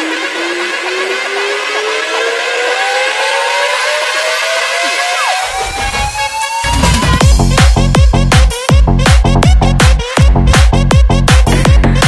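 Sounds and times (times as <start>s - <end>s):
synth riser climbing in pitch: 0.0s - 7.5s.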